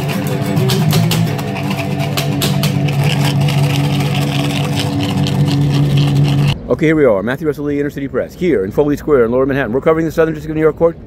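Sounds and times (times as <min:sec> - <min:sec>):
strummed guitar chords: 0:00.0 - 0:06.6.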